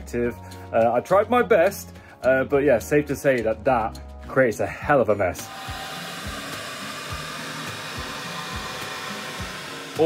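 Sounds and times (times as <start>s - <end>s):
background music beat: 0.0s - 10.0s
cnc spindle whine and hiss: 5.4s - 10.0s.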